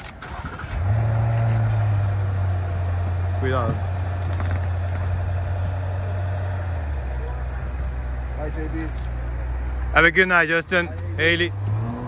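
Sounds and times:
car engine idling: 0.0 - 11.8.

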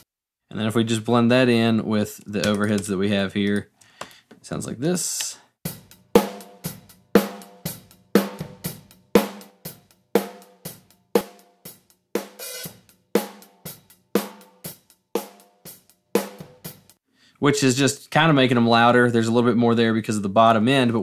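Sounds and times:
drum kit steady beat: 5.6 - 17.0
snare and cymbals ringing: 5.7 - 17.0.

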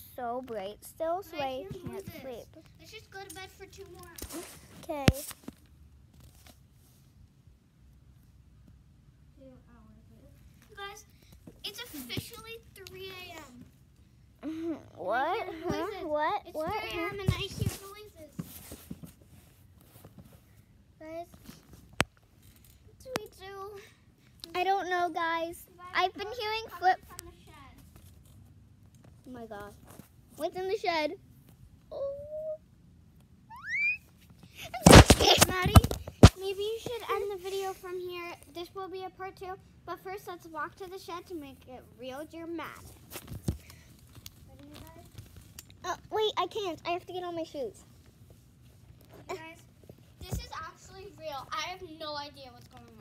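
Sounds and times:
small clicks and rustles: 1.5 - 8.8, 10.2 - 14.1, 15.7 - 23.6, 26.2 - 30.6, 40.9 - 46.8, 47.7 - 53.0
girl saying oh: 31.9 - 32.6
child making wordless sounds: 31.9 - 32.7.

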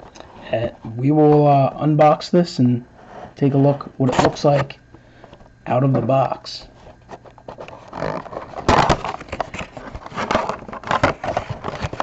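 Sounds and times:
cardboard box opening scraping: 7.6 - 12.0.

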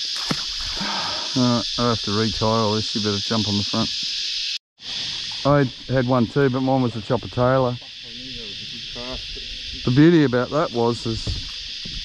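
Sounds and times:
insects droning: 0.0 - 12.0.

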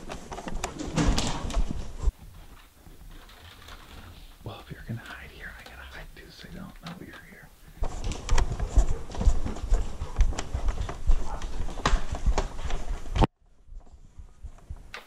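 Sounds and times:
hushed whispering: 4.4 - 7.8
footsteps on wooden floor: 7.7 - 13.3.

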